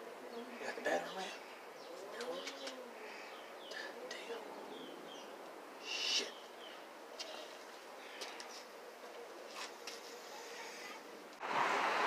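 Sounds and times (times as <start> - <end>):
dove cooing: 0.0 - 11.3.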